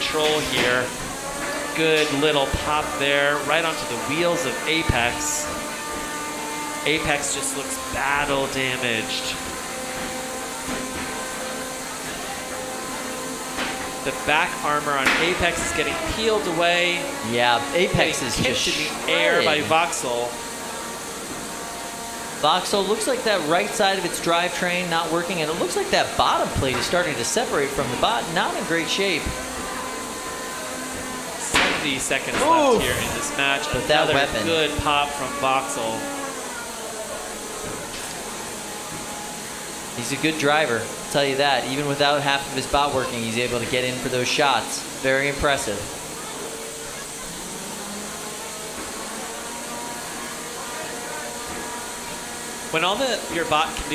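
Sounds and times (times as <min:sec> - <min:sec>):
steady mechanical whine: 0:00.0 - 0:53.9.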